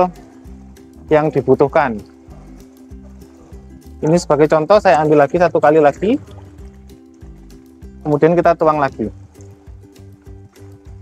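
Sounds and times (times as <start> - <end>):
background music: 0.0 - 11.0
water trickling into pond: 0.0 - 11.0
water poured from bucket: 4.8 - 8.0.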